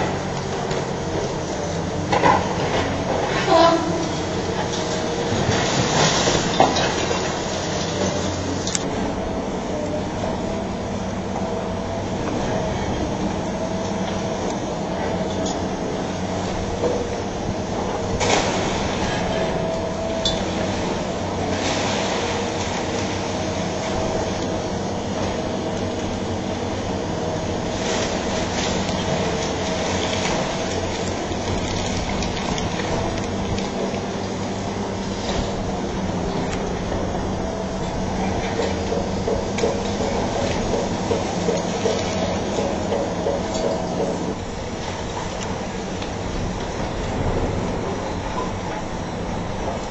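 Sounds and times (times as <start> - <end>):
excavator running: 0.0 - 49.9
concrete cracking and clattering: 4.6 - 8.9.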